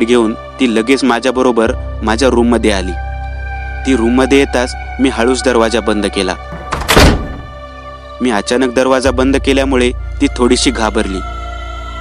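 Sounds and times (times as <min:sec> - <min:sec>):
soft background music: 0:00.0 - 0:12.0
door shutting with heavy thud: 0:06.5 - 0:07.6.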